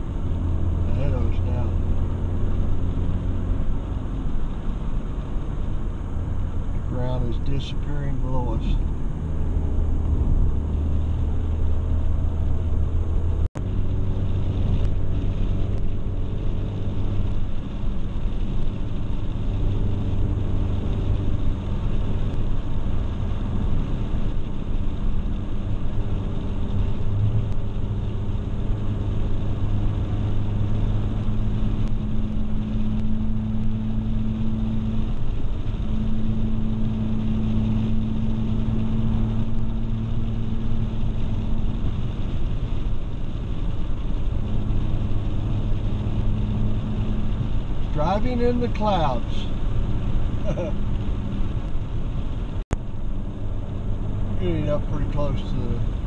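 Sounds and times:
car engine hum: 0.0s - 56.0s
road rumble: 0.0s - 56.0s.

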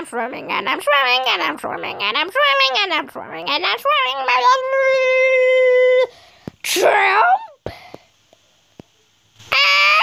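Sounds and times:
person screaming: 9.5s - 10.0s.

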